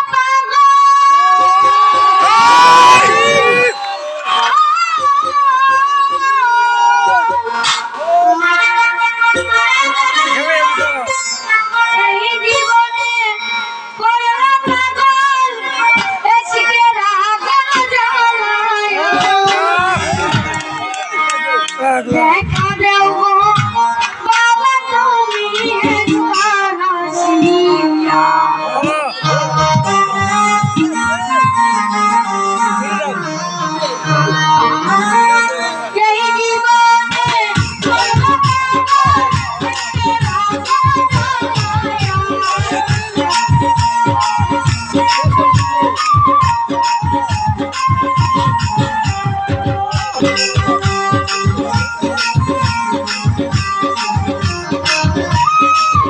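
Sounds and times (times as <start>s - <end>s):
instrumental accompaniment: 0.0s - 56.0s
child singing: 8.4s - 20.6s, 21.6s - 31.6s, 34.3s - 46.5s
sustained instrumental chords: 27.8s - 35.2s.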